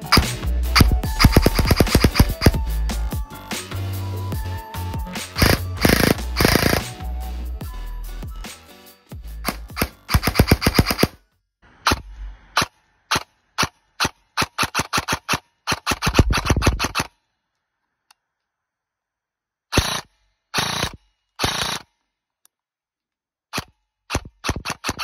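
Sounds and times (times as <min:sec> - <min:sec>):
airsoft rifle firing: 0:00.0 - 0:02.6, 0:05.4 - 0:07.0, 0:09.4 - 0:11.2, 0:11.9 - 0:17.1, 0:19.7 - 0:21.9, 0:23.6 - 0:25.0.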